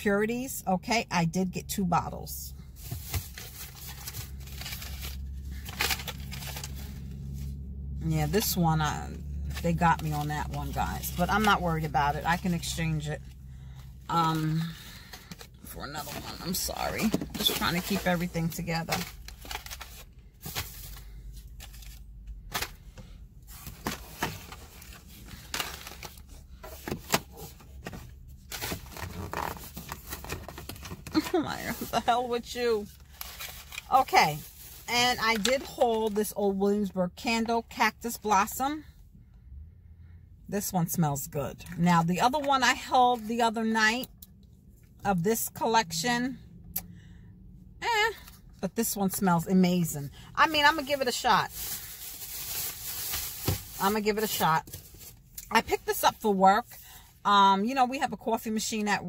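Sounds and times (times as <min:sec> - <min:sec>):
steady low hum: 0:00.6 - 0:35.4
plastic bag rustling and crinkling: 0:32.8 - 0:36.0, 0:50.5 - 0:55.2.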